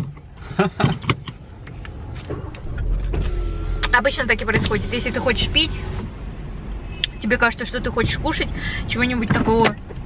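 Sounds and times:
car low rumble: 0:00.0 - 0:10.0
faint steady whine: 0:01.4 - 0:07.8.

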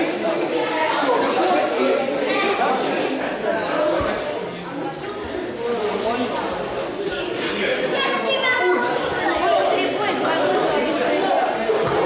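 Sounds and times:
chatter of children and adults: 0:00.0 - 0:12.0.

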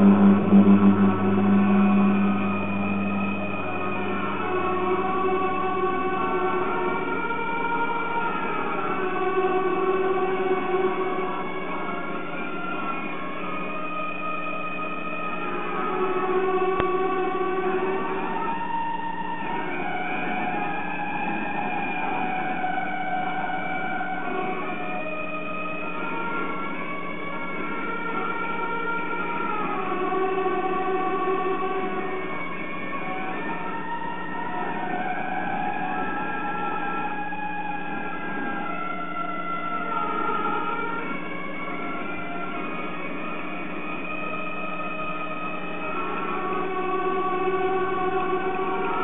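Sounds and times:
steady low hum: 0:00.0 - 0:09.6
slow music of held notes: 0:00.0 - 0:49.0.

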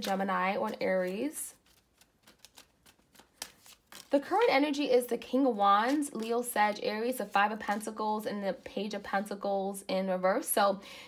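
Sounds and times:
cards snapping and tapping: 0:01.7 - 0:04.1.

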